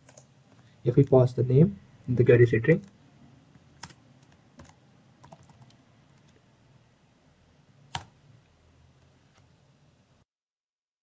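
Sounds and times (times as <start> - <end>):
faint low room hum: 0.0 - 10.3
computer keyboard keystroke: 3.8 - 6.4, 7.9 - 8.2.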